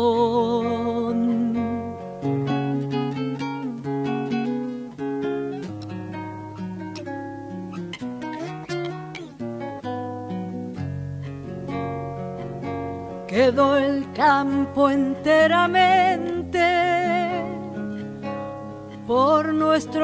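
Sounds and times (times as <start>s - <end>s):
classical guitar strumming chords: 0.0s - 20.0s.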